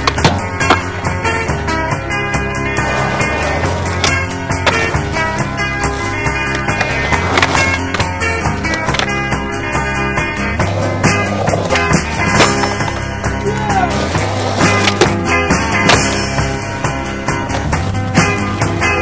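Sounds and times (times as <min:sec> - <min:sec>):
music playing: 0:00.0 - 0:19.0
skateboard clacks: 0:00.0 - 0:19.0
skateboard wheels rolling on concrete: 0:00.0 - 0:19.0.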